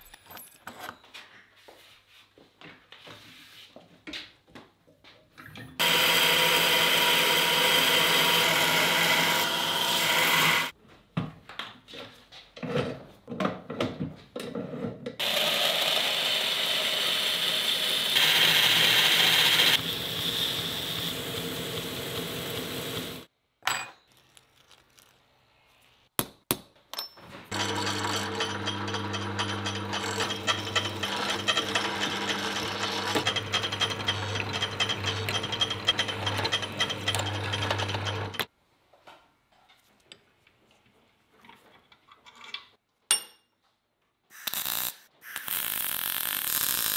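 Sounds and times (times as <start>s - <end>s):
belt grinder grinding steel: 5.8s - 10.7s, 15.2s - 23.3s, 27.5s - 38.5s
drill press humming: 15.2s - 23.3s, 27.5s - 38.5s.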